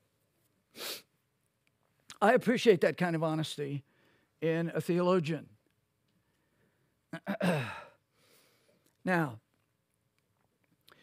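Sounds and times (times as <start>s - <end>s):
man breathing close to microphone: 8.1s - 8.8s.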